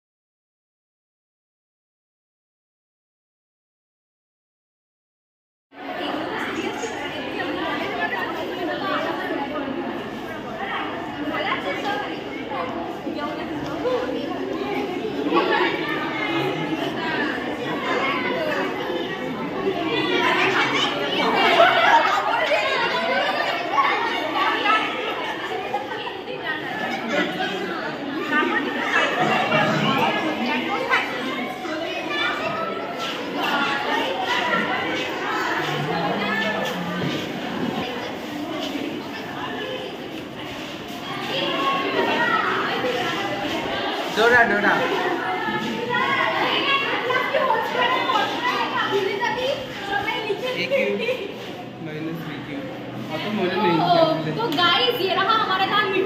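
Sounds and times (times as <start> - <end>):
women chatting: 5.8 - 44.2, 44.8 - 51.7, 53.0 - 56.0.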